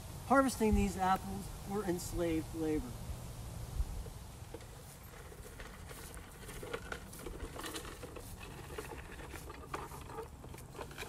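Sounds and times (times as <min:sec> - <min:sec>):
faint rustling: 0:03.9 - 0:11.0.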